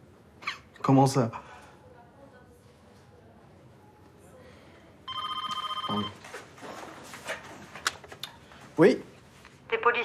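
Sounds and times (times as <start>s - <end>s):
soft scattered noises: 1.4s - 10.0s
telephone electronic warbling ring: 5.1s - 6.1s.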